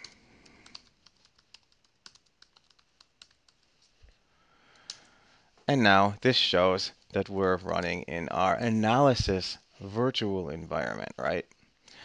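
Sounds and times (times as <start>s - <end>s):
computer keyboard typing: 0.0s - 3.7s.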